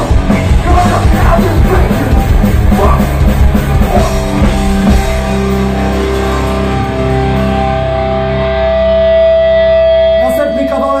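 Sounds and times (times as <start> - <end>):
guitar amplifier feedback tone: 0.0 - 11.0.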